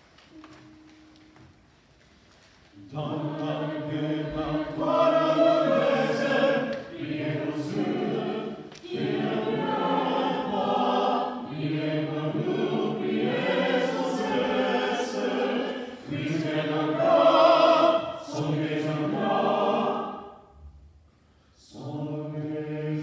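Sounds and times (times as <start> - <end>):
choir singing unaccompanied: 2.8 - 20.6, 21.6 - 23.0
choir breaths: 3.2 - 23.0.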